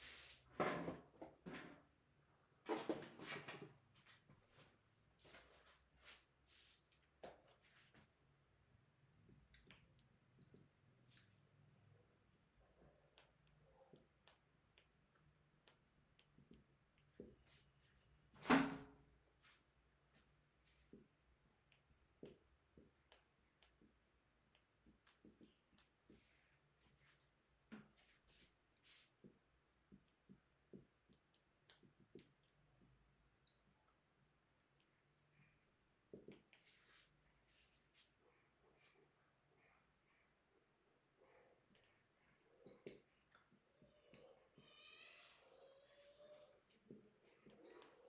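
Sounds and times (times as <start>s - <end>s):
marker pen squeaking on whiteboard: 9.3s - 11.6s, 12.7s - 17.9s, 20.9s - 40.2s, 41.3s - 48.0s.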